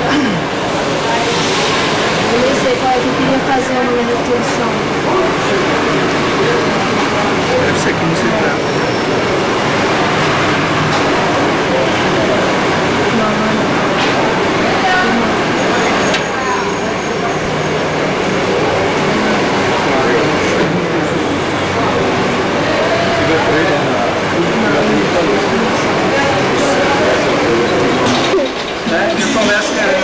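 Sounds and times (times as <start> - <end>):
people talking over one another: 0.0 - 30.0.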